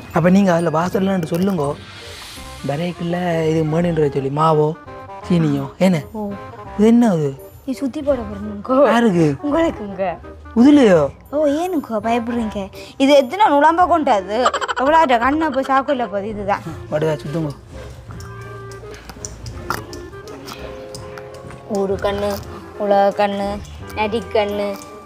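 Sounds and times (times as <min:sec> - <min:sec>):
background music: 0:00.0 - 0:25.0.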